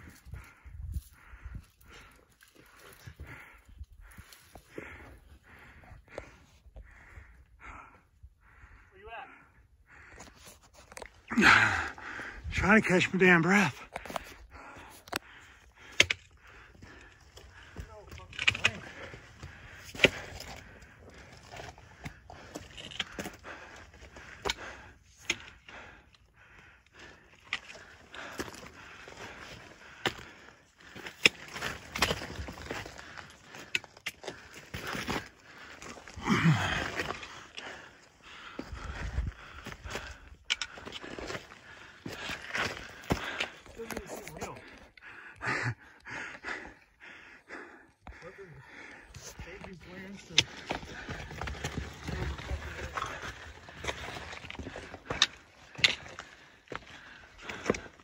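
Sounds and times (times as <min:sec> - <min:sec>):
hard breathing: 0:00.0 - 0:58.0
footsteps on loose rock: 0:27.4 - 0:37.7, 0:38.3 - 0:44.7, 0:49.1 - 0:58.0.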